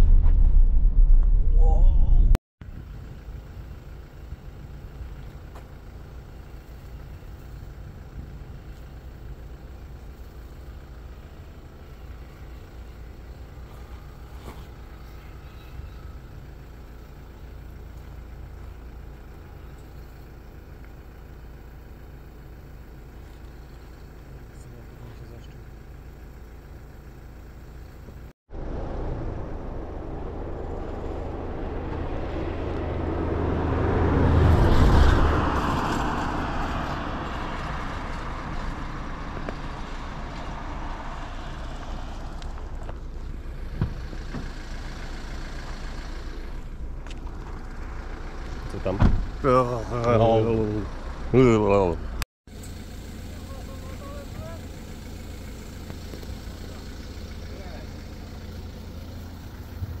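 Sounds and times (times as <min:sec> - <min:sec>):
low rumble: 0:00.0 - 0:06.4, 0:28.5 - 0:50.1
person calling out: 0:01.5 - 0:02.4
car passing close by: 0:28.5 - 0:42.9.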